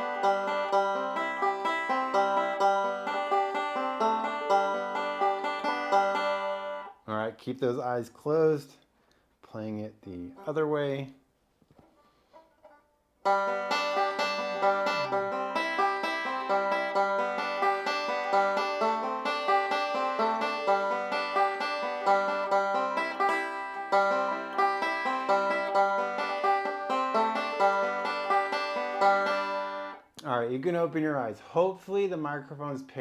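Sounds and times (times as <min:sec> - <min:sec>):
banjo picking: 0:00.0 - 0:07.3, 0:10.0 - 0:33.0.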